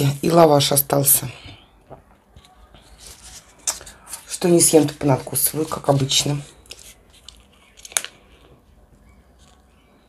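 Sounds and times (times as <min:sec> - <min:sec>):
flatbread rustling: 0:02.6 - 0:09.9
crisp crackle: 0:02.8 - 0:08.5.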